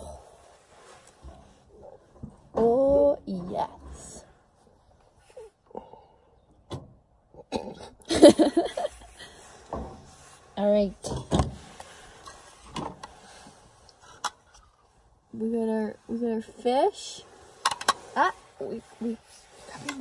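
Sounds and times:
person making wordless sounds: 0:02.6 - 0:04.3.

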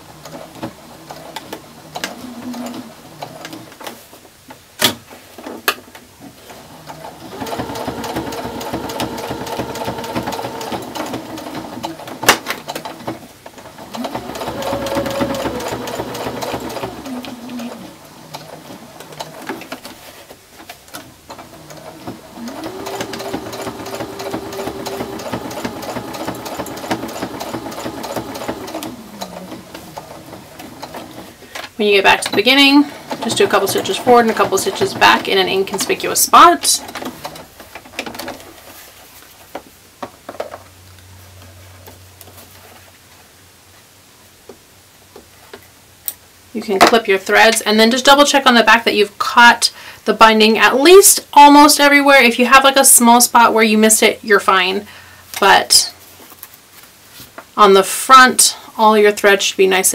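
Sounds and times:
electric sewing machine stitching: 0:00.0 - 0:03.7, 0:06.5 - 0:19.9, 0:21.3 - 0:31.4, 0:32.0 - 0:37.5.

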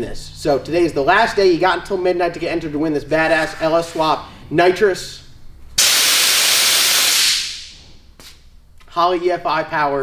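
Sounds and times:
loud gas hiss: 0:05.8 - 0:08.0.

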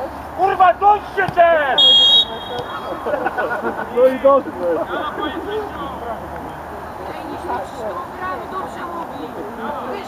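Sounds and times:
voices calling out: 0:00.0 - 0:10.0
referee's whistle blast: 0:01.8 - 0:02.9.

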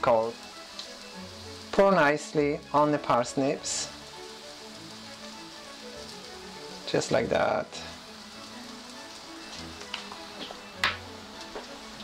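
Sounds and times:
soft background music: 0:00.0 - 0:12.0
vegetables sizzling in frying pan: 0:00.0 - 0:12.0.

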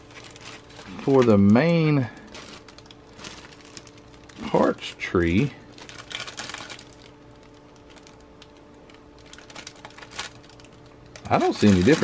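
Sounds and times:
plastic bags crinkling: 0:00.0 - 0:12.0.

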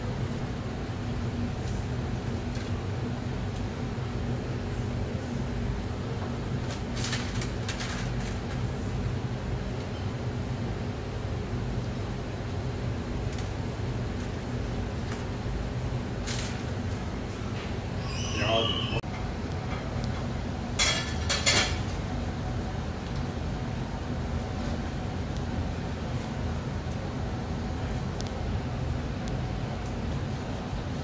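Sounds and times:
kitchen equipment humming: 0:12.7 - 0:24.9.

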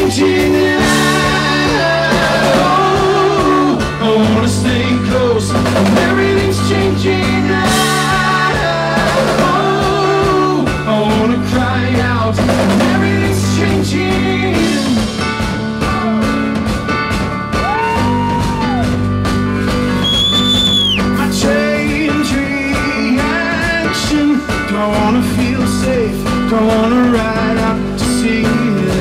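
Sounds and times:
drum kit with cymbals: 0:00.0 - 0:29.0
electric keyboard: 0:00.0 - 0:29.0.

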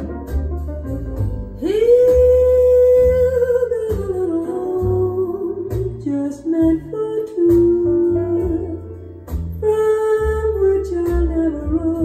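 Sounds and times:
jazz ballad over loudspeakers: 0:00.0 - 0:12.0.

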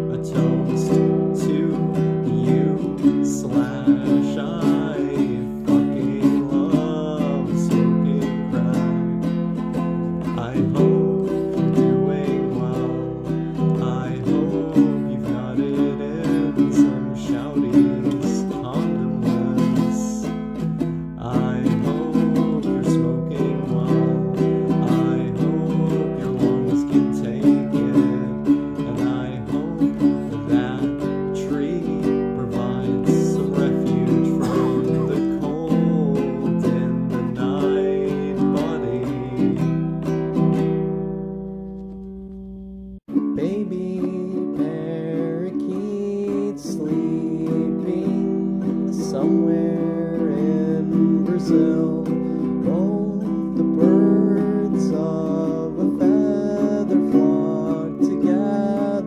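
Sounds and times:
strummed acoustic guitar: 0:00.0 - 0:59.0.

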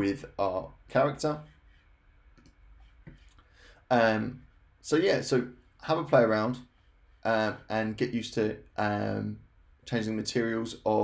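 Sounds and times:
low room noise: 0:00.0 - 0:11.0
computer mouse clicks: 0:02.3 - 0:03.4.

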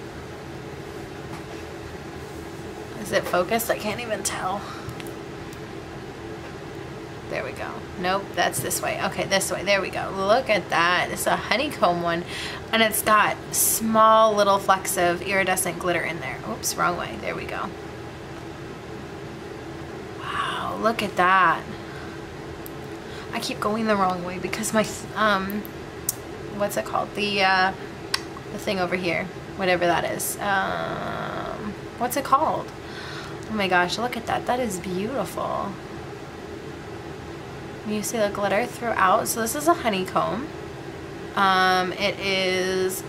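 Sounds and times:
low mechanical hum: 0:00.0 - 0:43.0.

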